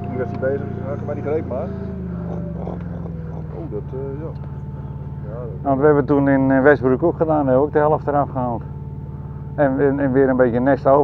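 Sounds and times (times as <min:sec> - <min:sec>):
work platform engine running: 0:00.0 - 0:11.0.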